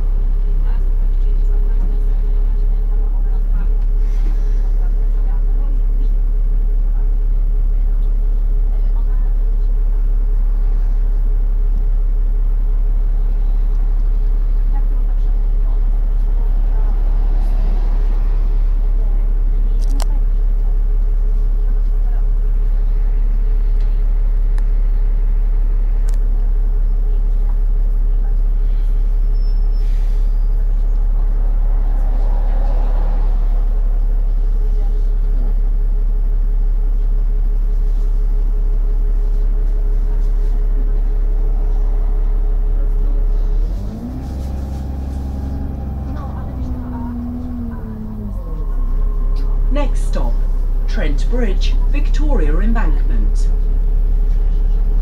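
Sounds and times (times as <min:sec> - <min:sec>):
road noise: 0:00.0 - 0:07.7, 0:12.7 - 0:24.2, 0:25.1 - 0:55.0
bus engine drone: 0:00.0 - 0:55.0.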